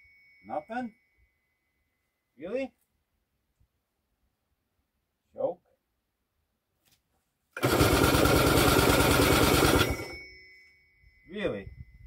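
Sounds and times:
two-stroke engine running: 0:07.6 - 0:10.2.

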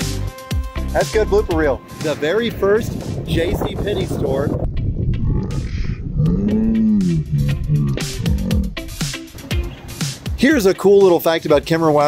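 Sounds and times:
background music: 0:00.0 - 0:12.0
man groaning: 0:05.2 - 0:08.8.

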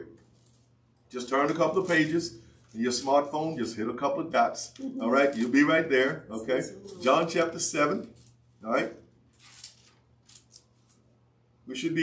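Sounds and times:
pages being turned: 0:00.2 - 0:00.7, 0:09.3 - 0:11.1.

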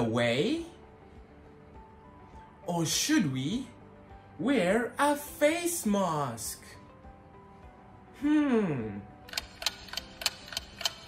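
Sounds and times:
clock ticking: 0:09.3 - 0:11.0.

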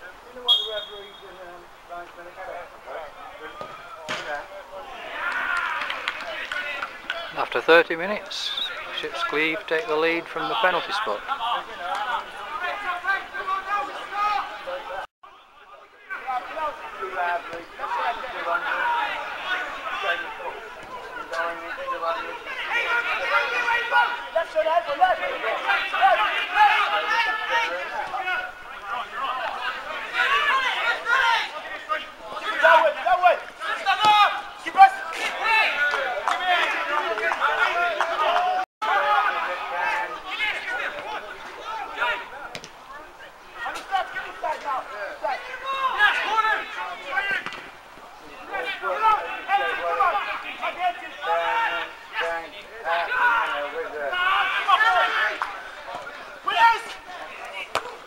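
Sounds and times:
indistinct crowd chatter: 0:00.0 - 0:58.0.

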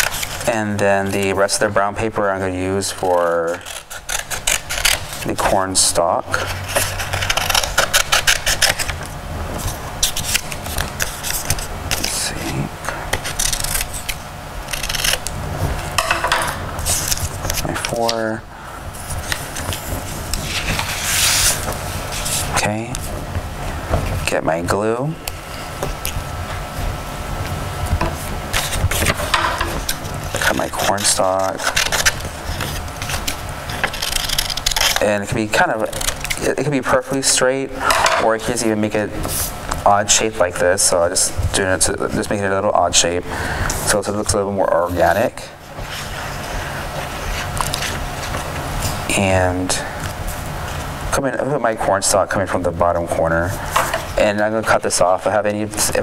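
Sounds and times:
scissors snipping paper: 0:00.0 - 0:00.5, 0:03.1 - 0:05.6, 0:06.4 - 0:09.1, 0:13.1 - 0:15.3, 0:28.5 - 0:36.6
paper rustling: 0:19.0 - 0:23.1, 0:28.0 - 0:35.2.

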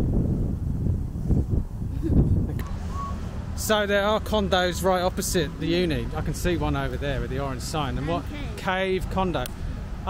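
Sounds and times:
low outdoor rumbling: 0:00.0 - 0:10.0.

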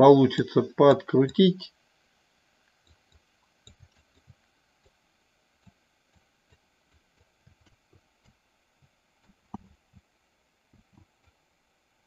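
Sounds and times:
soft scattered taps: 0:05.6 - 0:10.1, 0:10.7 - 0:11.4.

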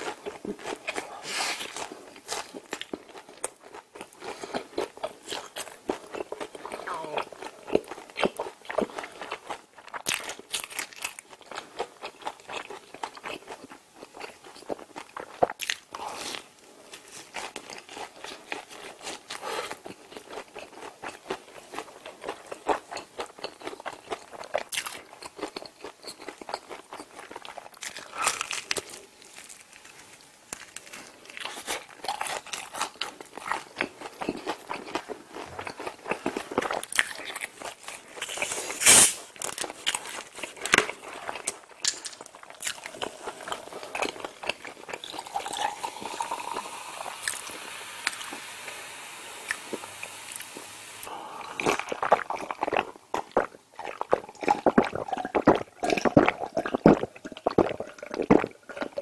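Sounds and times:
crunchy chewing of fried food: 0:00.0 - 0:48.7, 0:49.4 - 0:59.0.

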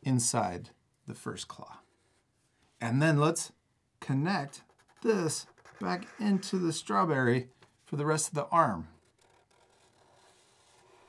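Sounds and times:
marker rubbing on paper: 0:04.4 - 0:07.1, 0:09.0 - 0:11.0.

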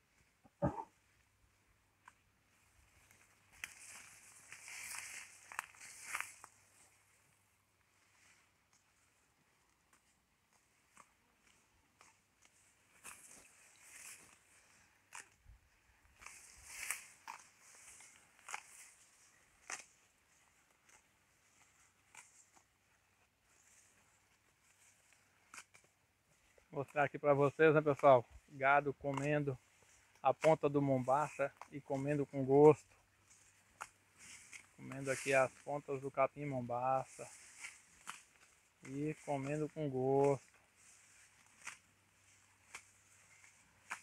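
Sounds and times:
cow tearing and chewing grass: 0:00.0 - 0:44.0.

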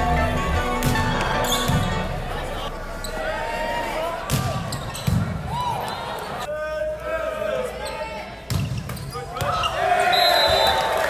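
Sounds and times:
players and spectators talking: 0:00.0 - 0:11.0
sneakers squeaking on gym floor: 0:01.4 - 0:02.0, 0:04.4 - 0:06.5, 0:07.8 - 0:09.8.

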